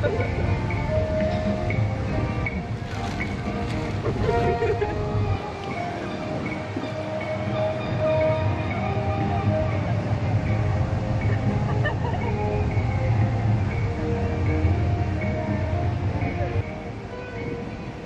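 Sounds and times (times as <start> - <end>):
background music with held notes: 0.0 - 18.0.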